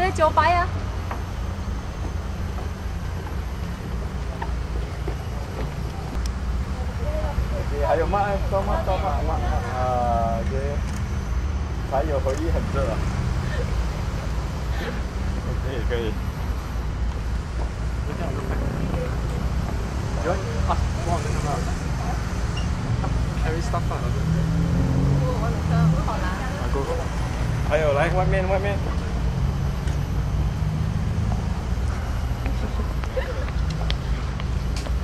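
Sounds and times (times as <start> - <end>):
people talking: 4.2 - 10.8, 11.9 - 13.6, 18.0 - 22.4, 23.3 - 24.4, 25.1 - 29.2, 32.4 - 34.2.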